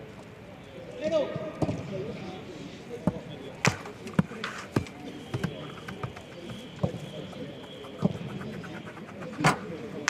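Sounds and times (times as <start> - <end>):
players' voices: 0.0 - 10.0
boot kicking ball thuds: 6.8 - 7.1.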